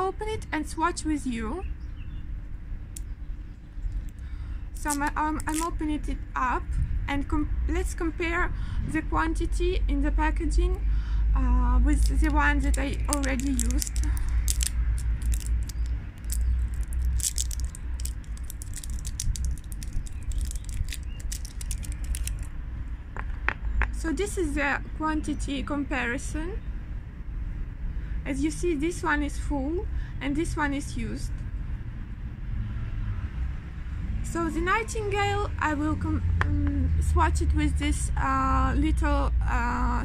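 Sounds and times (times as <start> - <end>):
low background rumble: 0.0 - 32.4
wind on microphone: 6.5 - 9.3
plastic jar cap clicking: 12.0 - 22.5.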